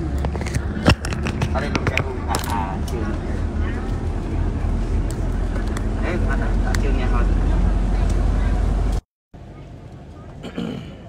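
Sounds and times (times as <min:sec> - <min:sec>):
bus engine rumble: 0:00.0 - 0:11.0
road noise: 0:00.0 - 0:11.0.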